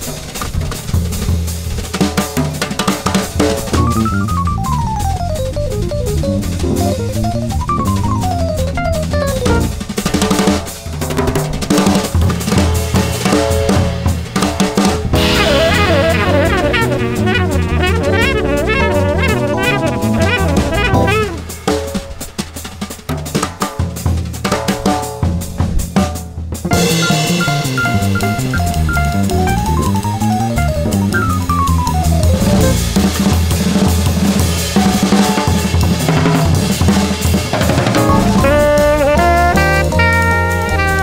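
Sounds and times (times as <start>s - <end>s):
drum kit: 0.0s - 41.0s
jazz band playing bebop: 0.0s - 41.0s
walking bass line: 3.8s - 9.8s, 15.2s - 21.5s, 26.8s - 32.9s, 38.0s - 41.0s.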